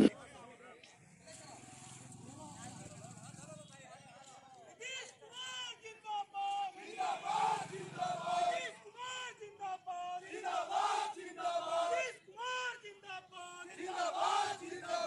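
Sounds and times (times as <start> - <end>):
men shouting slogans: 6.4 - 15.0.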